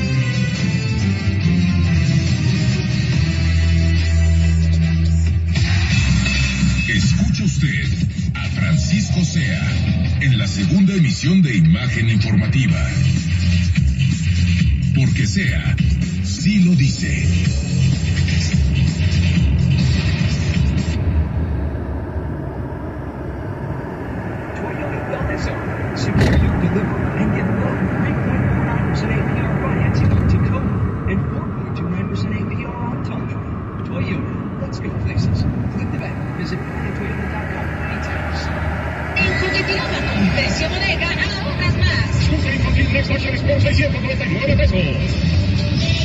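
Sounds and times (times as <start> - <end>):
music on car radio: 0.0 - 46.0
road and engine rumble: 0.0 - 46.0
voices on radio: 24.4 - 46.0.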